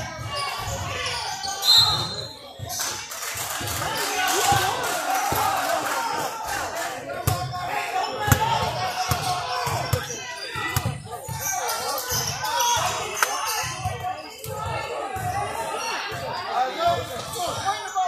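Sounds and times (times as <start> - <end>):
people talking: 0.0 - 18.0.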